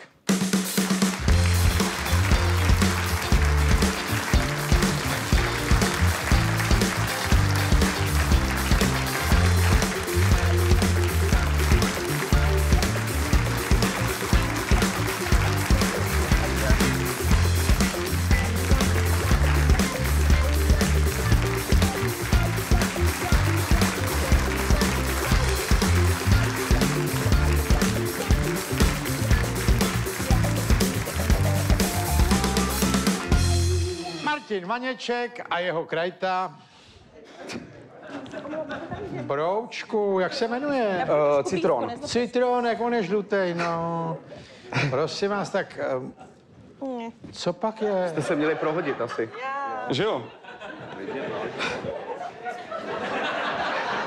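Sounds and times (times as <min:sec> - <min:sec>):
drum kit beat: 0:00.0 - 0:34.6
bass guitar bass line: 0:01.2 - 0:34.2
keyboards: 0:01.2 - 0:34.6
electric guitar: 0:01.3 - 0:34.2.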